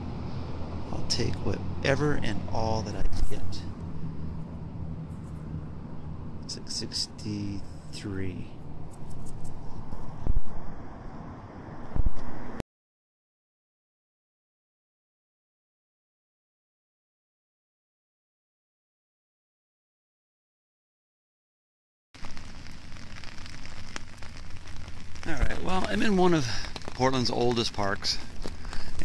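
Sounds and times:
traffic rumble: 0.0s - 12.6s, 22.2s - 29.0s
low thump on microphone: 10.2s - 10.6s, 11.9s - 12.4s
steady hiss: 22.2s - 29.0s.

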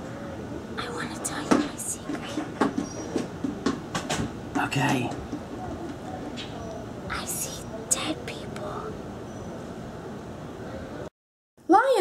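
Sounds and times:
girl whispering: 0.8s - 2.3s, 7.1s - 9.0s.

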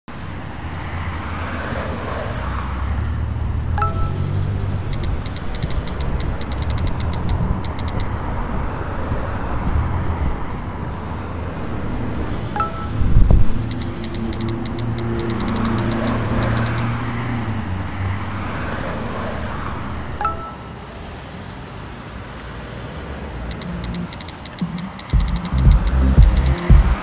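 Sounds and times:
low traffic rumble: 0.1s - 27.0s
phone message alert chime: 3.8s - 8.0s, 12.6s - 16.8s, 20.2s - 20.6s
heavy low thump: 25.2s - 27.0s.

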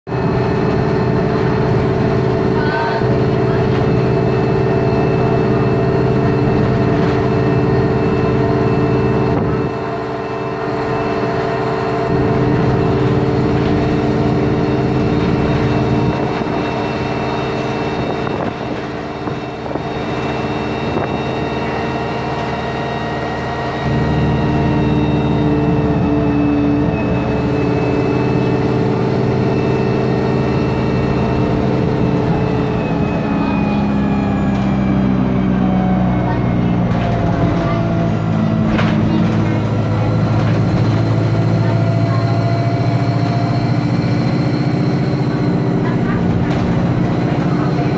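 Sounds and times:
bus engine running hard: 0.0s - 47.9s.

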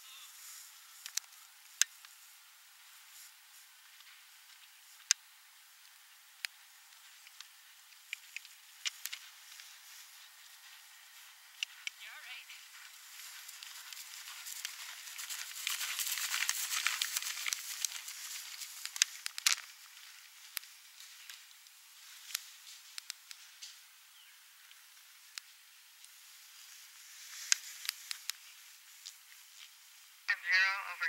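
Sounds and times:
sharp clicks and ticks: 7.2s - 9.2s, 13.4s - 19.7s, 22.3s - 23.8s
horse galloping on grass: 8.2s - 21.4s.

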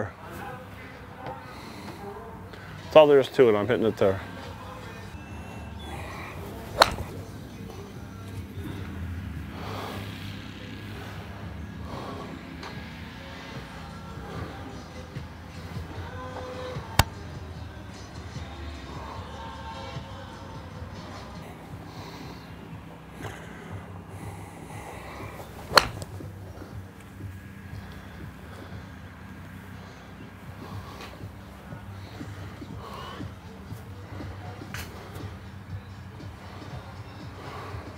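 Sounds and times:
background music: 0.0s - 37.9s
golf club striking ball: 5.8s - 8.3s, 24.2s - 26.6s.

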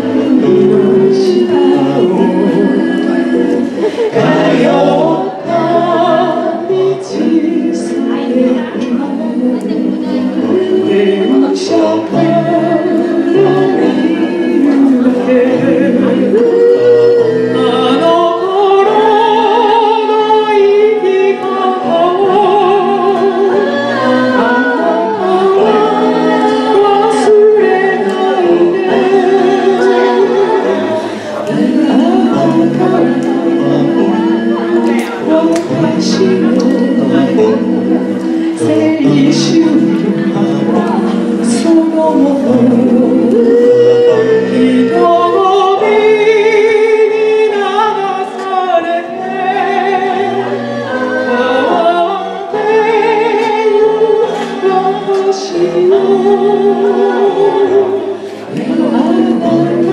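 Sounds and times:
group of people singing: 0.0s - 59.9s.

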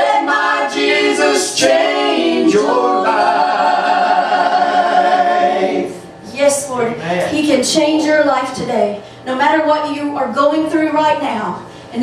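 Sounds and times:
vocal trio singing in harmony: 0.0s - 6.2s
woman speaking: 6.2s - 12.0s.

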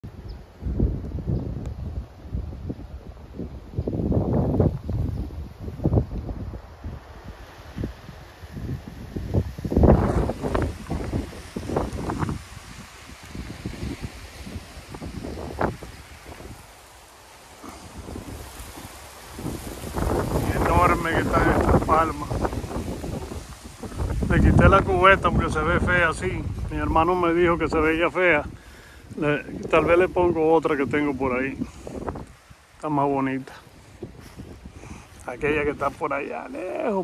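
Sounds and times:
palm fronds rustling: 0.0s - 37.0s
wind buffeting microphone: 0.0s - 37.0s.

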